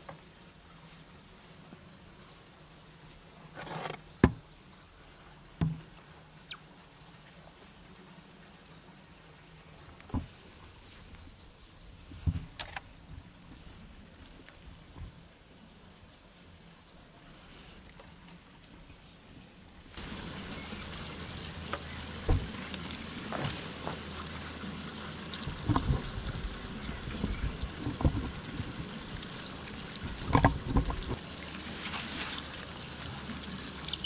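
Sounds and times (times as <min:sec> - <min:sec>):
otters chewing and crunching: 0:20.0 - 0:34.0.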